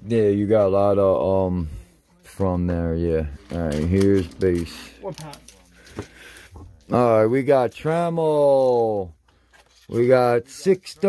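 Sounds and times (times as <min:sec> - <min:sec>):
man's voice: 0:00.0 - 0:05.0
trading cards sliding and clicking: 0:03.4 - 0:06.5.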